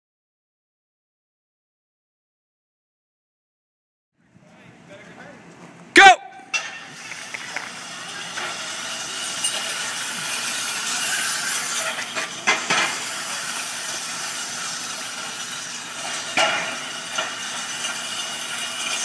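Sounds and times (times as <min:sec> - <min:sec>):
metal sleds scraping asphalt: 0:06.5 - 0:19.0.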